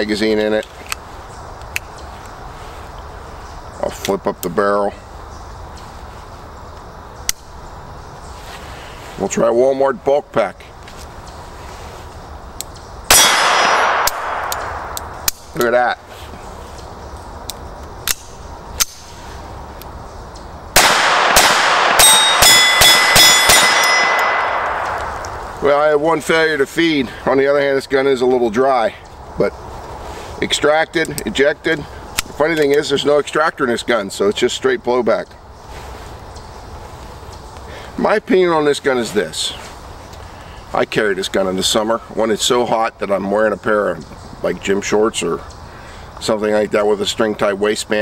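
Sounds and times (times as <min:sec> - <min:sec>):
man talking: 0:00.0 - 0:00.8, 0:03.8 - 0:05.0, 0:09.2 - 0:10.8, 0:15.5 - 0:16.4, 0:25.6 - 0:29.6, 0:30.4 - 0:35.4, 0:37.7 - 0:39.7, 0:40.7 - 0:45.5, 0:46.2 - 0:48.0
outdoor hiss and rumble: 0:00.0 - 0:48.0
steel target ringing: 0:13.1 - 0:14.8, 0:20.8 - 0:25.0
pistol shots: 0:13.1 - 0:15.5, 0:20.8 - 0:25.3
light metallic clicks: 0:13.8 - 0:15.7.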